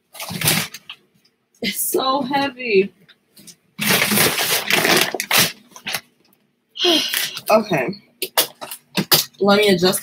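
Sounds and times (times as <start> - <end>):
bag of clothes rustling: 3.8 - 6.0.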